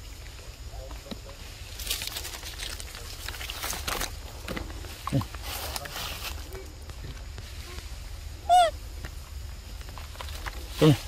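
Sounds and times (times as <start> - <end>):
macaque call: 8.4 - 8.8.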